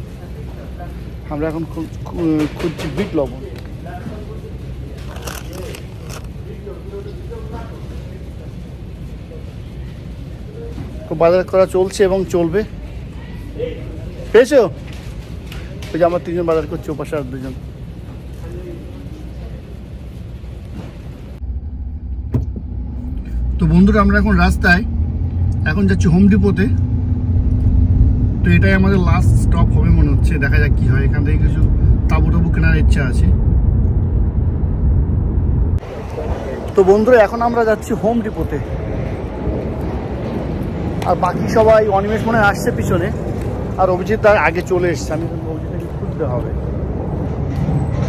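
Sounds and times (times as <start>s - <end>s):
shop background noise: 0.0s - 21.5s, 35.8s - 48.0s
low outdoor rumble: 0.0s - 48.0s
car driving rumble inside cabin: 21.4s - 35.8s.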